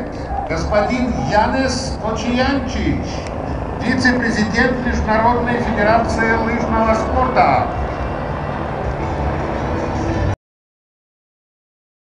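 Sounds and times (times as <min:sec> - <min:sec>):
helicopter flying overhead: 0:00.0 - 0:10.4.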